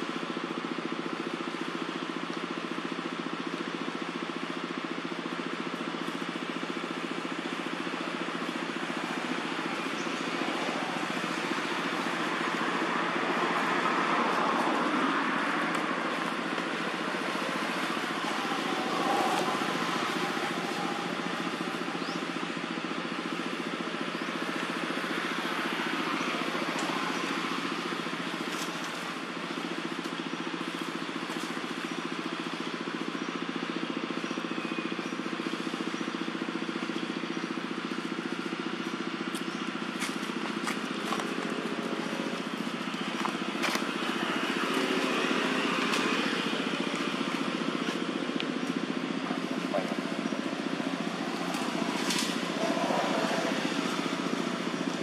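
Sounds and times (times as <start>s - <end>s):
outdoor noise: 0.0s - 55.0s.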